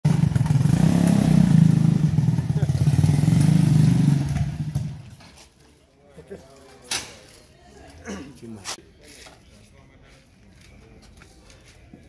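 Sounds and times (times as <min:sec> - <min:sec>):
buggy engine running: 0:00.0 - 0:05.2.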